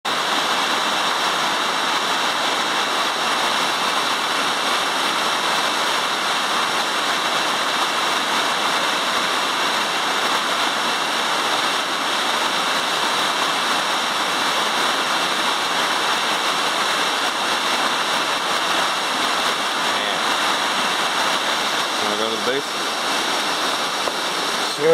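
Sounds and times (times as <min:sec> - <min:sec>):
waterfall rushing: 0:00.1 - 0:24.9.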